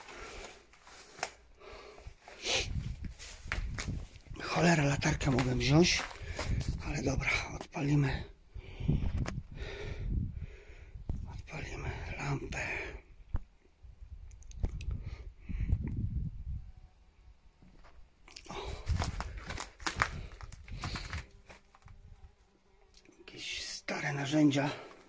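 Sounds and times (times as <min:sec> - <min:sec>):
crunching on rubble and debris: 0:02.0 - 0:06.8, 0:18.4 - 0:22.1.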